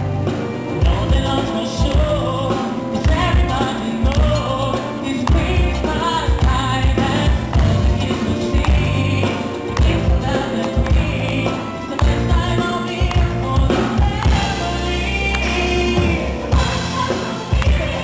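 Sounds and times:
orchestra playing pop song: 0:00.0 - 0:18.0
man singing into a microphone: 0:00.8 - 0:18.0.

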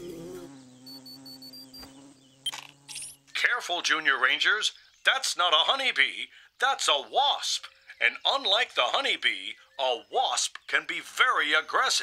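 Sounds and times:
cartoon wasp buzzing hum: 0:00.0 - 0:03.6
high beeps: 0:00.9 - 0:01.8.

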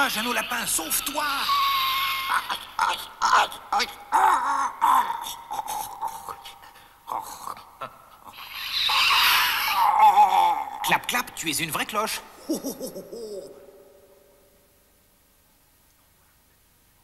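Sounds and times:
squeaky character voice squealing: 0:00.0 - 0:02.9, 0:08.3 - 0:10.2.

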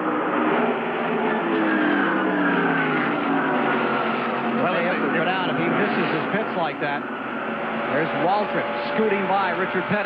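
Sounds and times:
race car engines passing: 0:00.0 - 0:10.0.

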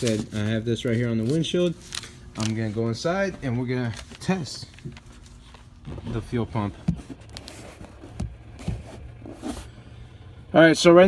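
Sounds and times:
handling knocks and rustles: 0:02.4 - 0:09.8.

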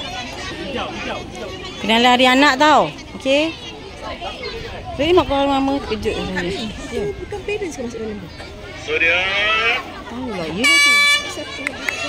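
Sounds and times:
air horn blast: 0:10.6 - 0:11.4.

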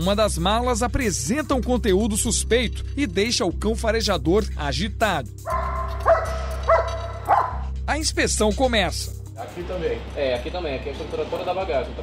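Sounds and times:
dog barking: 0:05.5 - 0:07.7.

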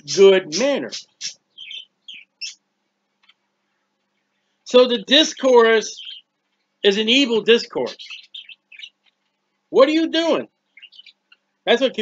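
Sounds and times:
small bird chirping: 0:00.0 - 0:03.4, 0:04.7 - 0:11.6.

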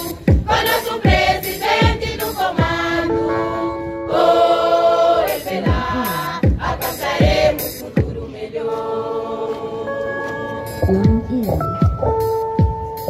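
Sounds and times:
women's chorus singing: 0:00.0 - 0:10.8.

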